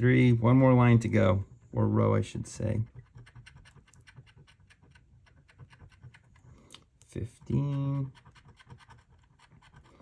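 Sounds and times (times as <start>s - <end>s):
coin scratching lottery ticket: 2.8s - 6.4s, 7.3s - 10.0s.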